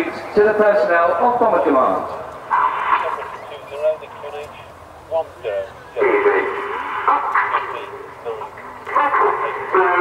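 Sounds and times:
man commentating over loudspeakers: 0:00.0 - 0:02.2, 0:02.9 - 0:10.0.

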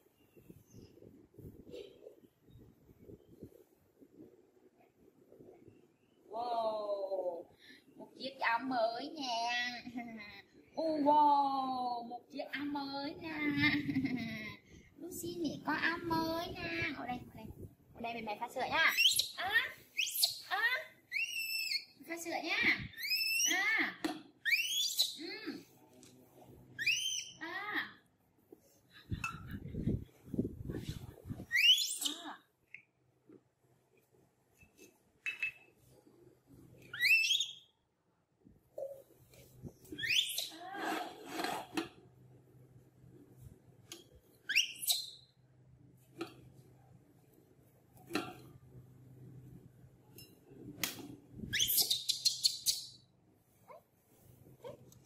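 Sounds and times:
baby monkey squealing: 0:18.9 - 0:19.4, 0:20.0 - 0:20.4, 0:21.1 - 0:21.9, 0:22.9 - 0:23.6, 0:24.4 - 0:25.2, 0:26.8 - 0:27.4, 0:31.5 - 0:32.2, 0:36.9 - 0:37.6, 0:40.0 - 0:40.6, 0:44.5 - 0:45.2, 0:51.5 - 0:52.8.

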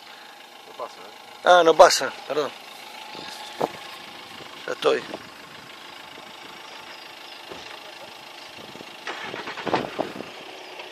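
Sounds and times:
outdoor background noise: 0:00.0 - 0:10.9
voices: 0:00.6 - 0:08.6.

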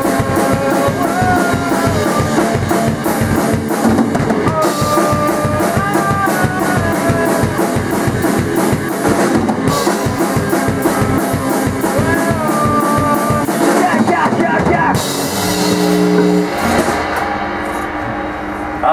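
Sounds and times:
rock band jamming: 0:00.0 - 0:18.9
cymbal crash: 0:15.0 - 0:18.9.

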